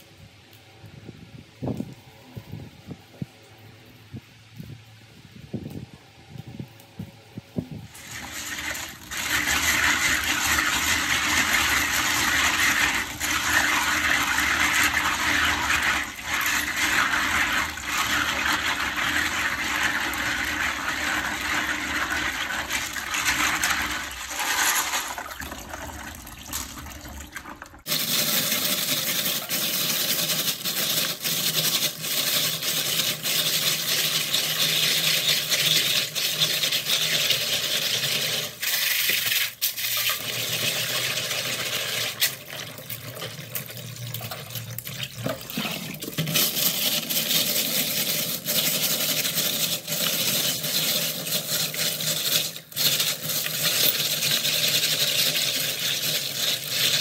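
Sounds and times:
tap water running into bowl: 7.9 - 57.0.

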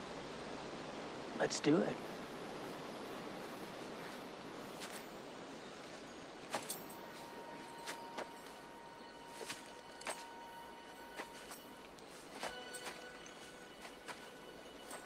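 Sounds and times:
film score held chords: 0.0 - 15.0
light steps on leafy ground: 5.8 - 15.0.

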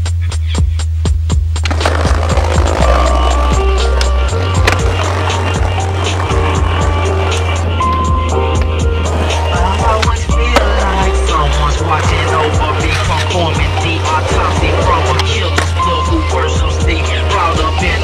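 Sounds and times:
backing music with bass line: 0.0 - 18.0
skateboard clacks: 1.6 - 18.0
skateboard rolling on pavement: 1.6 - 18.0.

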